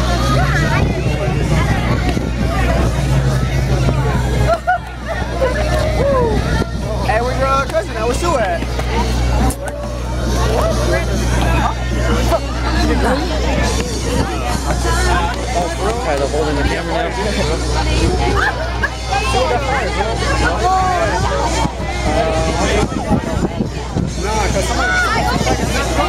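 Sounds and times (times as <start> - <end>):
crowd chatter: 0.0 - 26.0
music with deep bass line: 0.0 - 26.0.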